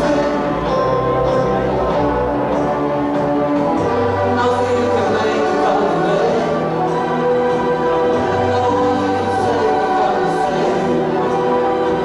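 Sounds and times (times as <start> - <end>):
live band playing held chords: 0.0 - 12.0.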